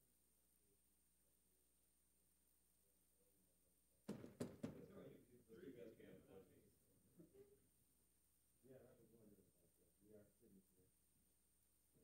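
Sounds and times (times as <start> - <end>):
thumps on microphone: 4.1 - 4.9.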